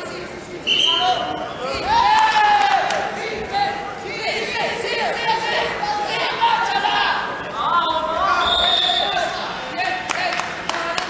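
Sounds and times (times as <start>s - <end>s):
voices talking in echoing hall: 0.0s - 11.0s.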